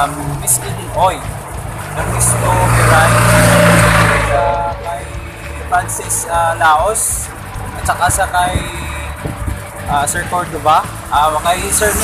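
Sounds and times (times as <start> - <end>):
vehicle passing by: 0.0 - 12.0.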